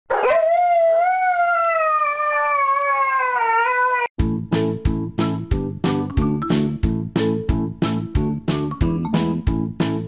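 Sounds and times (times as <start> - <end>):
dog howling: 0.1 - 4.1.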